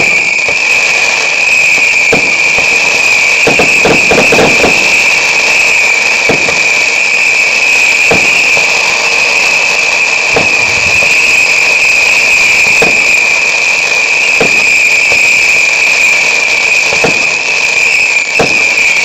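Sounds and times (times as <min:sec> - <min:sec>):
firework fountain hissing: 0:00.0 - 0:19.0
sharp firework pops: 0:01.5 - 0:07.0, 0:08.0 - 0:09.1, 0:09.9 - 0:13.7, 0:14.3 - 0:15.6, 0:16.8 - 0:17.6, 0:18.3 - 0:19.0.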